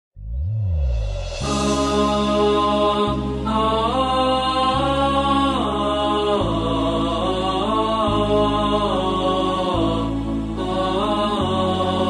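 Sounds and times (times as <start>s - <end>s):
low sustained drone: 0.4s - 12.0s.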